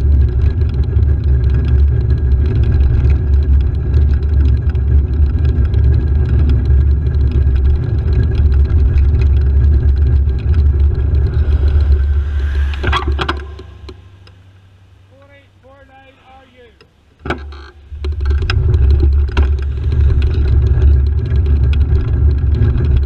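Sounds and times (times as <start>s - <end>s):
wind rumble: 0.0s - 15.6s, 17.8s - 23.0s
road running noise: 0.0s - 23.0s.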